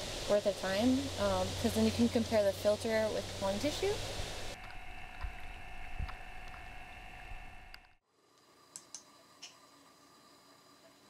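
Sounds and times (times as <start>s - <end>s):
small air pumps whining: 0.0s - 11.0s.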